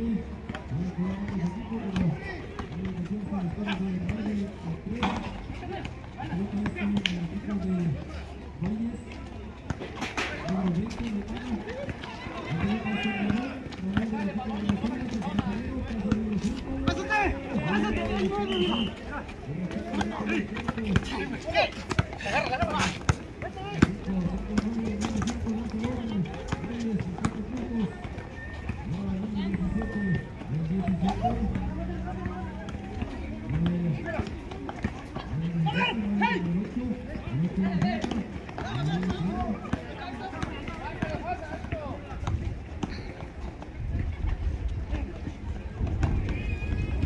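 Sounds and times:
people talking: 0.0s - 47.0s
basketball bouncing: 10.4s - 18.8s, 19.6s - 35.3s.

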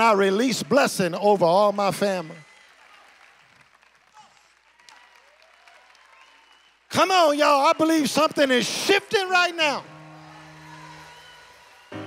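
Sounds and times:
congregation applause: 0.0s - 12.0s.

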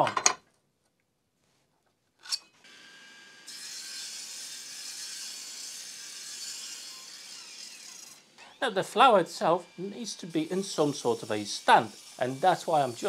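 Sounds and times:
mitre saw cutting wood: 2.6s - 13.0s.

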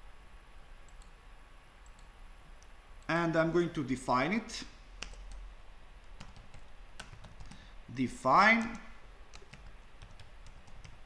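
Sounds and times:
low steady hum: 0.0s - 11.0s
computer mouse clicks: 0.8s - 1.2s, 1.8s - 2.7s, 5.0s - 5.4s.

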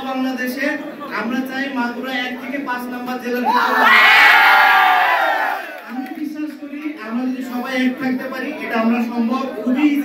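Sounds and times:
crowd cheering: 3.4s - 6.0s.

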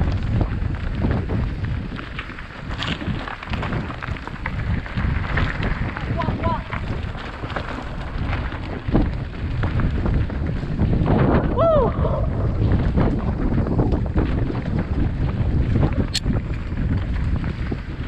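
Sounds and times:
bike tyres knocking on stones: 0.0s - 11.6s
steady low rumble: 0.0s - 17.9s
wind buffeting microphone: 0.0s - 18.0s.

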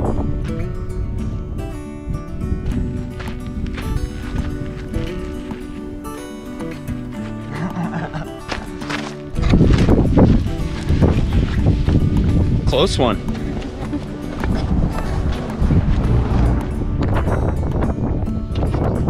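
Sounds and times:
music with sustained notes: 0.0s - 19.0s
vehicle passing on gravel: 8.5s - 17.9s.

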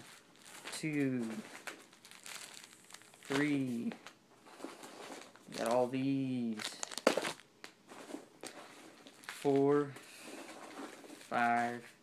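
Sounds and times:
packing peanuts crunching: 0.0s - 4.2s, 4.8s - 9.8s.

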